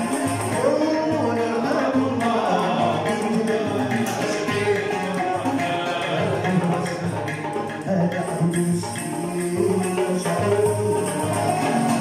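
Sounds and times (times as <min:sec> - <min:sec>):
hand drum beat: 0:00.0 - 0:12.0
plucked strings ensemble: 0:00.0 - 0:12.0.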